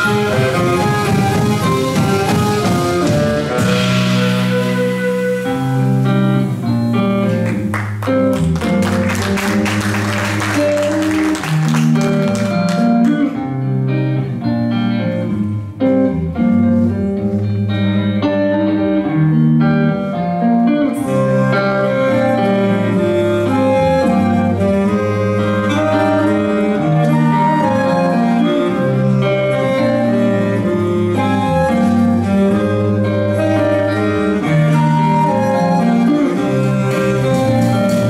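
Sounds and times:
flute: 0.0s - 7.5s, 19.9s - 38.0s
drum kit: 0.0s - 13.4s, 20.9s - 38.0s
electric bass: 0.0s - 38.0s
electric guitar: 0.0s - 38.0s
saxophone: 0.0s - 38.0s
splashy cymbal strokes: 1.8s - 6.8s.

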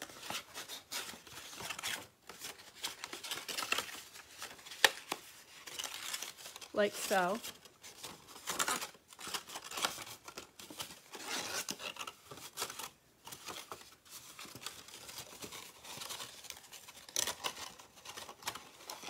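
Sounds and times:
cardboard box rustling: 0.0s - 19.0s.

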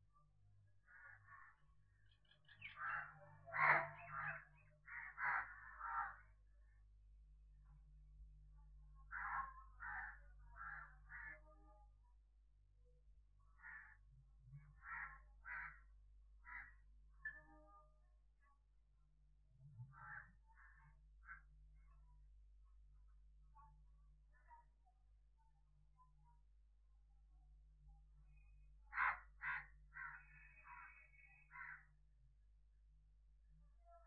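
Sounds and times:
crow cawing faintly: 0.9s - 1.6s, 2.2s - 6.3s, 9.1s - 11.6s, 13.6s - 14.0s, 14.8s - 16.8s, 19.9s - 21.5s, 28.3s - 32.0s.

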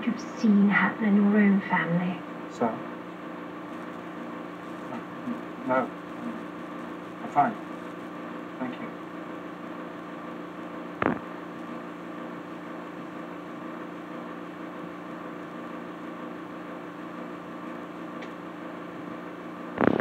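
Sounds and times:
electrical hum with hiss: 0.0s - 20.0s.

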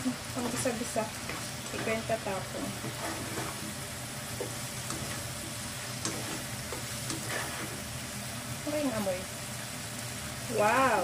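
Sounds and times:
meat sizzling in a frying pan: 0.0s - 11.0s
spatula scraping a pan: 0.4s - 8.0s.

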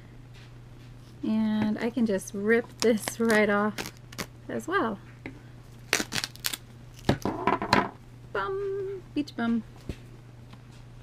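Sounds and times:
stabilizer ripping from plastic hoop: 5.8s - 7.3s.

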